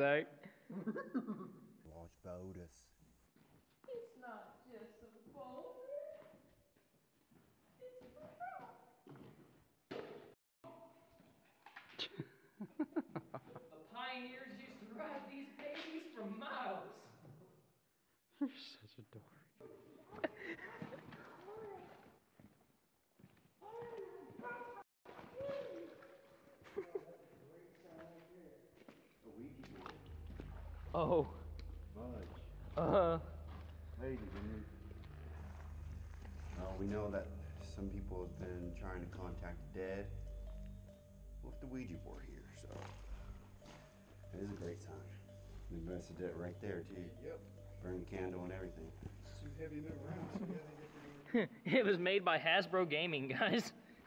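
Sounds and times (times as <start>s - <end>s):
laughter-like bursts: 12.0s - 13.8s, 20.1s - 21.2s.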